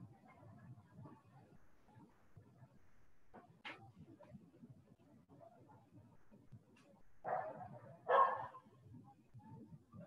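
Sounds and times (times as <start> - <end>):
dog barking: 7.2 - 8.6.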